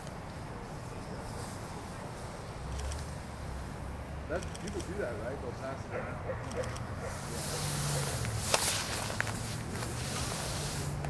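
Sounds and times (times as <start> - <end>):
outdoor background noise: 0.0 - 11.0.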